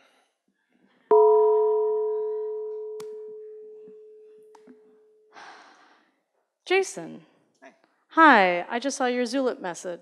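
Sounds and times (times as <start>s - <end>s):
bell-like chime ringing: 1.1s - 5.3s.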